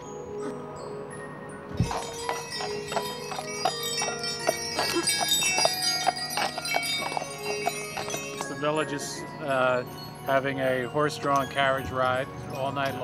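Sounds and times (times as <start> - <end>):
sleigh bells jingling: 1.7 - 13.0.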